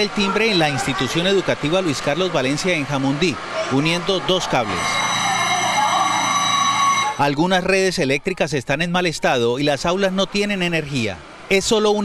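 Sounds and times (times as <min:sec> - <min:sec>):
electric bell ringing: 0:04.8 - 0:07.2.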